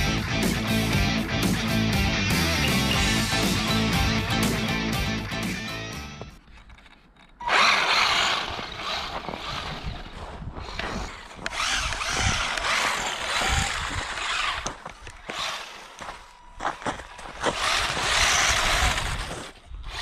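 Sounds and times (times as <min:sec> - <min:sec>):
toy car electric motor whining: 0:07.4 - 0:20.0.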